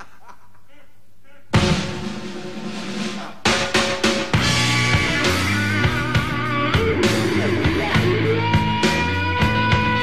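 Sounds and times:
sharp drum strikes: 1.6 - 7.4
rock band playing live: 3.6 - 10.0.

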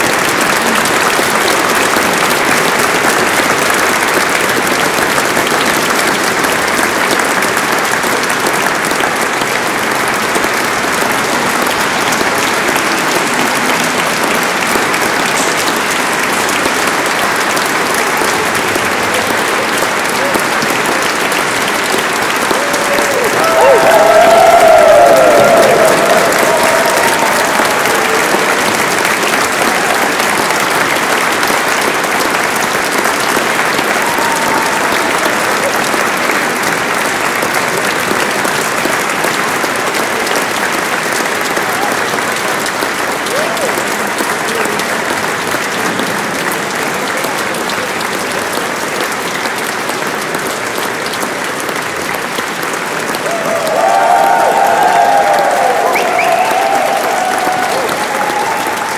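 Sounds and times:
audience applauding: 0.0 - 58.9.

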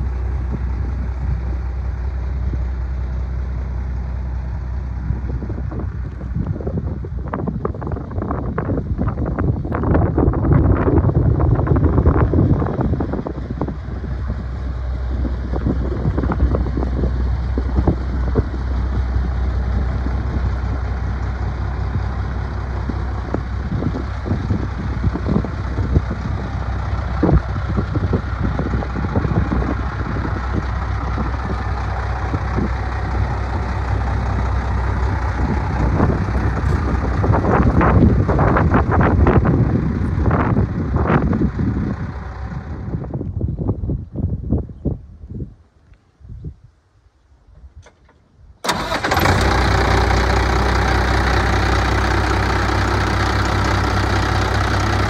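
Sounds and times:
diesel truck engine idling: 0.0 - 43.7, 48.6 - 55.0.

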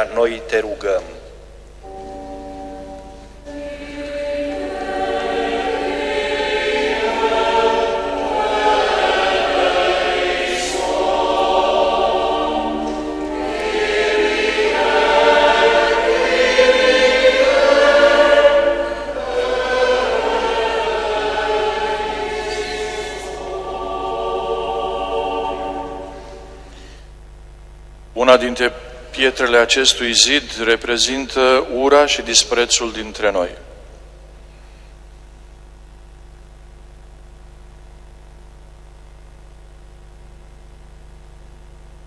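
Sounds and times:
choir singing: 1.8 - 26.8.

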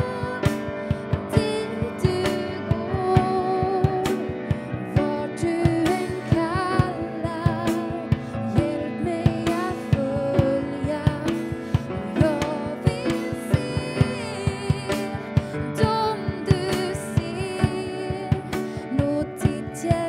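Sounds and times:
grand piano chords: 0.0 - 20.0
steady drum beat: 0.0 - 20.0
woman singing: 0.0 - 20.0.

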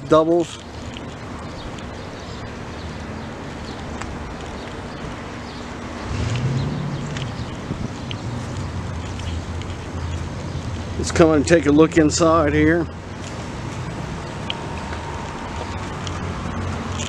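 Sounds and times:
wind noise on microphone: 6.1 - 10.9.

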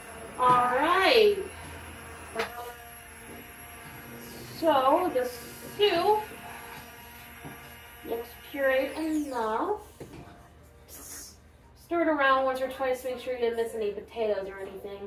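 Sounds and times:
immersion blender motor: 0.0 - 9.9
thin whine: 0.0 - 9.9
woman's voice: 0.4 - 1.5, 4.6 - 6.2, 11.9 - 15.0.

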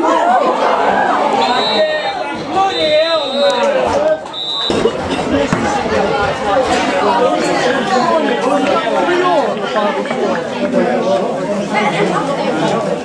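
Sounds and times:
spectators chattering: 0.0 - 13.0.

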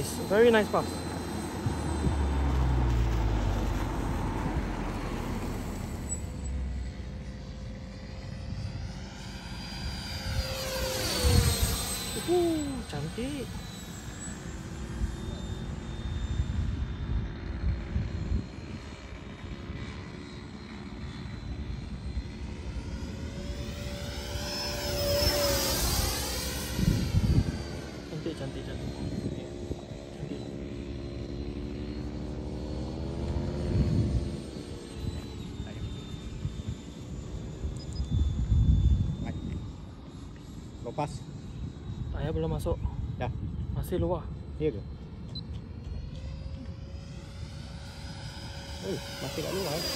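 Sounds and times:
model jet fan whining overhead: 0.0 - 49.9.

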